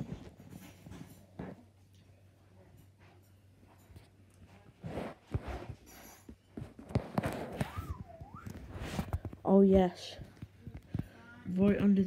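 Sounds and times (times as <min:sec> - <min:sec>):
wavering high-pitched tone: 0:07.6 - 0:08.7.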